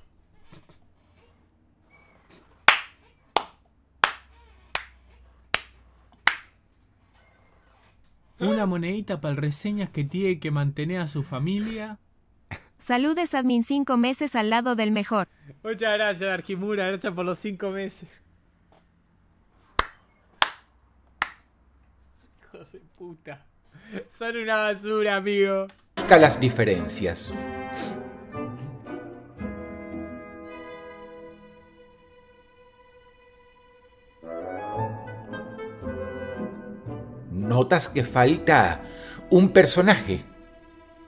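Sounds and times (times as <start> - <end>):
person clapping: 2.7 - 6.5, 19.8 - 21.5.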